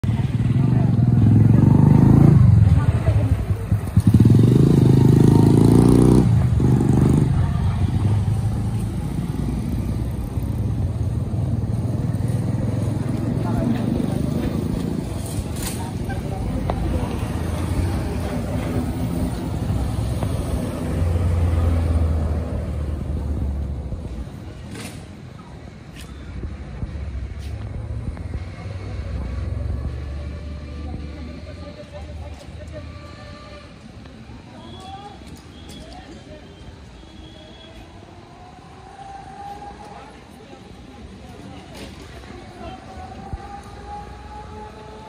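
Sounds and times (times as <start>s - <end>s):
voices: 0.0s - 45.0s.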